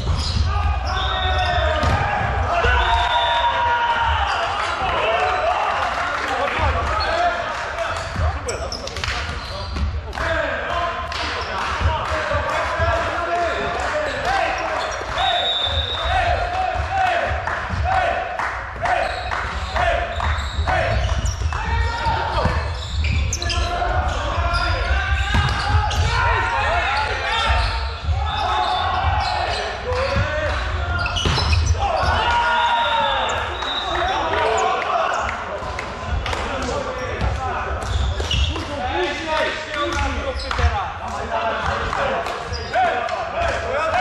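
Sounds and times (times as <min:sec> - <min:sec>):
players calling out: 0:00.0 - 0:44.0.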